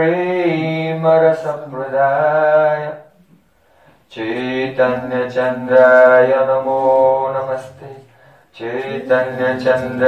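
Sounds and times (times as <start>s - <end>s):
man chanting a prayer: 0.0s - 3.1s, 4.1s - 10.0s.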